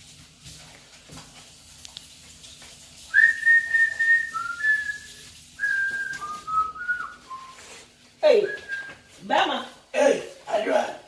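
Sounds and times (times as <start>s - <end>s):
person whistling a tune: 3.1s - 7.8s, 8.4s - 9.0s.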